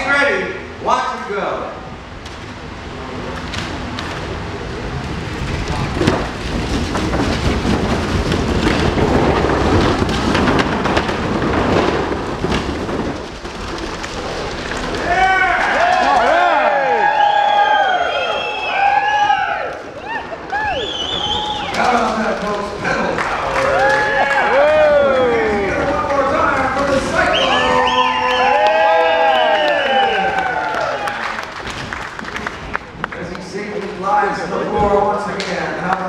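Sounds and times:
bicycle tyres rumbling on boards: 1.7s - 36.0s
knocks from wooden planks: 5.4s - 16.6s
crowd whooping and cheering: 14.7s - 33.0s.

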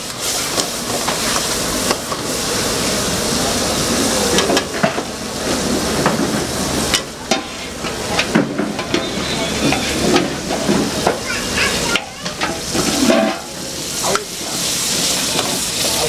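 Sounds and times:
food sizzling in a frying pan: 0.0s - 16.0s.

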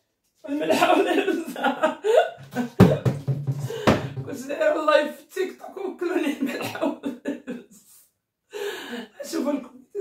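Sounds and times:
woman speaking: 4.2s - 7.2s, 9.2s - 10.0s.

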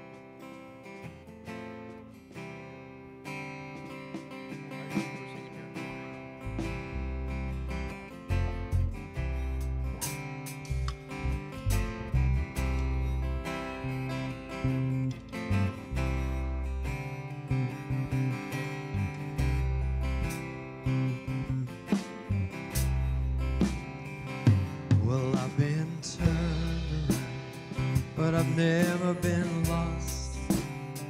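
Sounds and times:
strummed acoustic guitar: 0.0s - 31.0s
electric bass notes: 2.8s - 31.0s
drum kit with cymbals: 3.6s - 7.3s, 8.7s - 13.8s, 21.5s - 31.0s.

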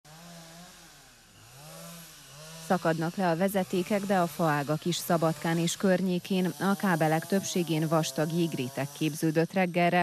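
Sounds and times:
motor engine running: 0.1s - 10.0s.

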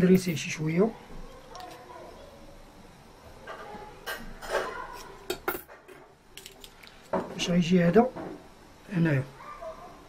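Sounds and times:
small metal parts clinking: 6.4s - 7.1s.

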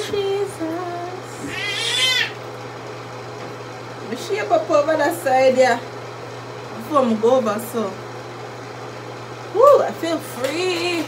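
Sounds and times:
cat meowing: 1.4s - 2.4s.

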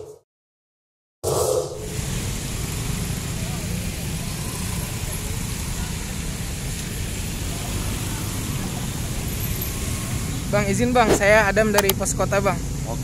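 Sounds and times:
low street rumble: 1.8s - 13.0s
faint voices: 3.2s - 11.4s.

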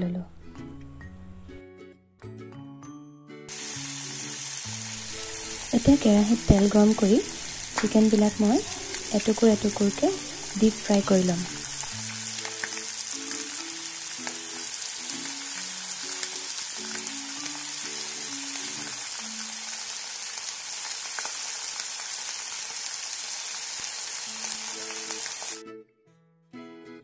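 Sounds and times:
quiet background music: 0.0s - 20.1s
chicken sizzling in hot oil: 3.5s - 25.6s.

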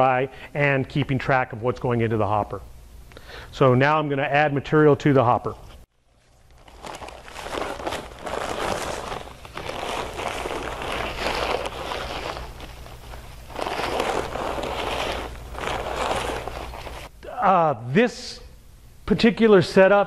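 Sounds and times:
paper sacks rustling: 6.1s - 17.1s
dry mortar mix pouring: 6.4s - 17.1s.

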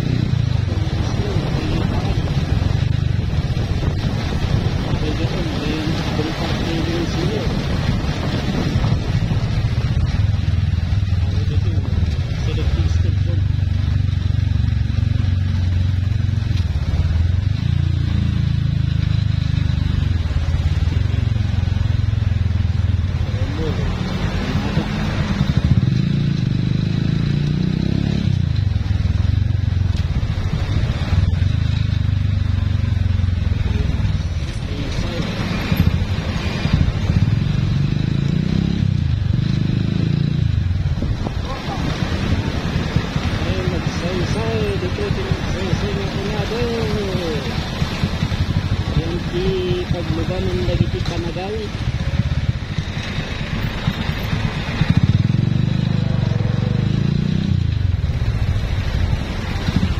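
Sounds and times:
motorcycle engine revving: 0.0s - 59.9s.

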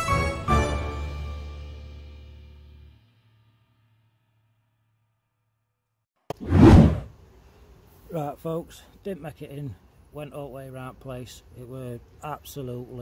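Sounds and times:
loud rushing whoosh: 6.3s - 7.1s.

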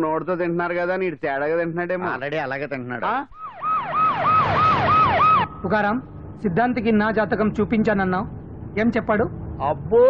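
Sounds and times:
vehicle siren yelping: 3.4s - 5.8s.

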